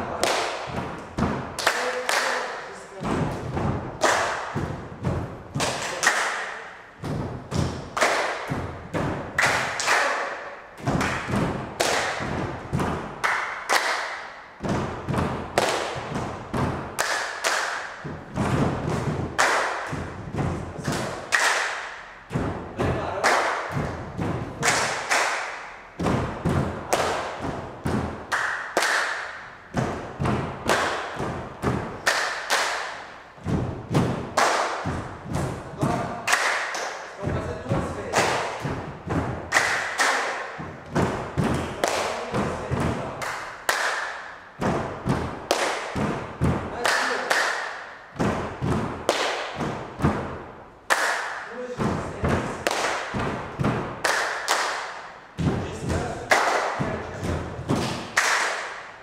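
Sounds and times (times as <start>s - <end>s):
people stomping on wooden floor: 0.0s - 2.1s, 2.9s - 6.0s, 6.9s - 10.0s, 10.8s - 13.9s, 14.6s - 36.6s, 37.2s - 51.1s, 51.7s - 58.5s
people clapping rhythmically: 0.0s - 59.0s.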